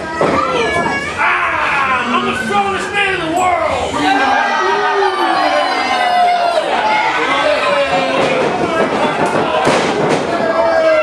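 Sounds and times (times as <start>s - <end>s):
crowd yelling and cheering: 0.0s - 11.0s.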